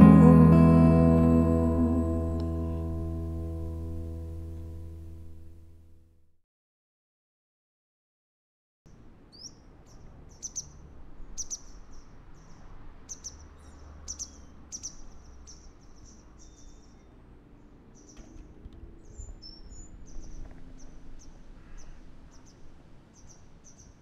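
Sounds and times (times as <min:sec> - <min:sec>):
low steady rumble: 0:00.0 - 0:05.9
small birds chirping: 0:09.3 - 0:24.0.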